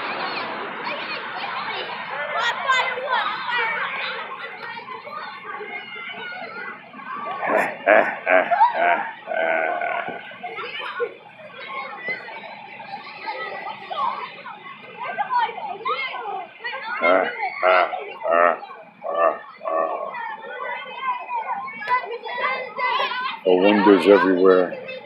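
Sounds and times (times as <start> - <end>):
people chattering and calling out: 0.0 - 25.0.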